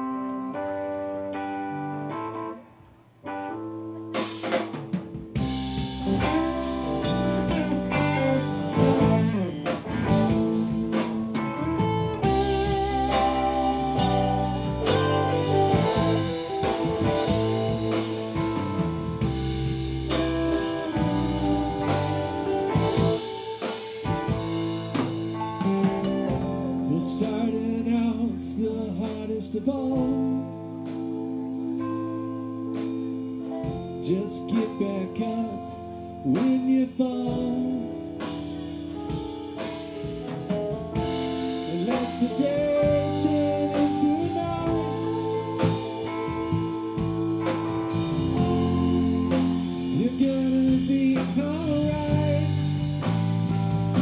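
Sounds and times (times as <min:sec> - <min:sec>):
live rock band playing: 0:00.0 - 0:54.0.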